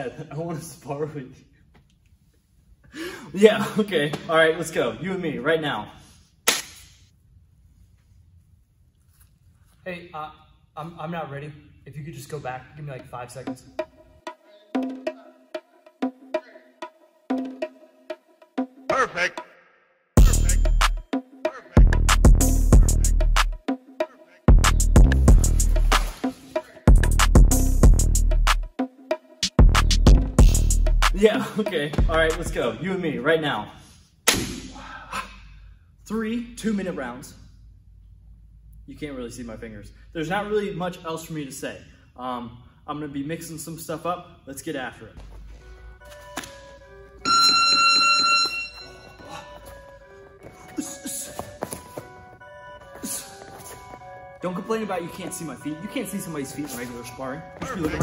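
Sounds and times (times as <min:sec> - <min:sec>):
sharp crack: 0:06.4 - 0:07.0, 0:34.3 - 0:34.8.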